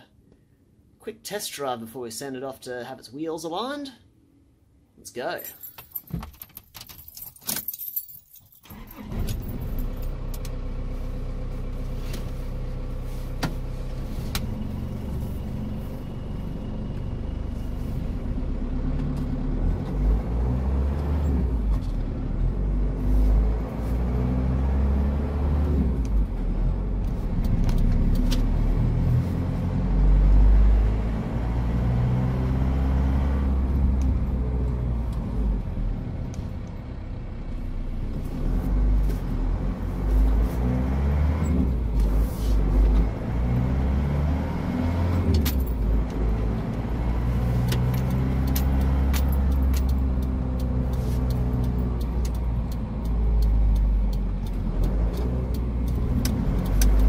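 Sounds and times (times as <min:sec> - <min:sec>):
keys jangling: 0:05.4 - 0:08.7
vehicle engine driving off: 0:08.8 - 0:57.0.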